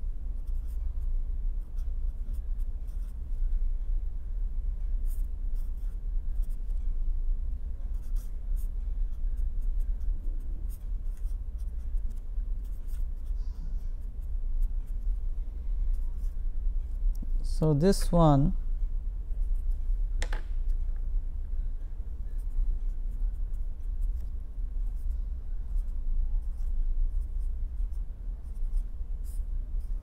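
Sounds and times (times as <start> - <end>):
steady low hum: 0.0 - 30.0
marker pen scratching on paper: 0.4 - 0.9, 1.6 - 3.5, 5.0 - 6.9, 7.8 - 15.2, 15.9 - 17.2, 19.4 - 20.8, 22.2 - 30.0.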